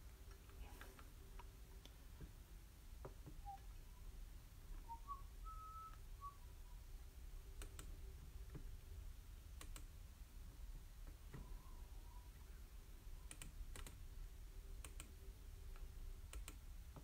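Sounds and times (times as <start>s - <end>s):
person whistling short phrase: 4.9s - 6.4s
faint clicks: 7.6s - 8.7s, 9.6s - 9.9s, 13.2s - 14.0s, 14.8s - 17.0s.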